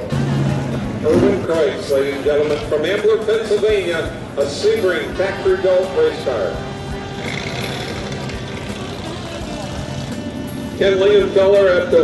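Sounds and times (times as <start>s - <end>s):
car engine driving slowly past: 6.7s - 10.8s.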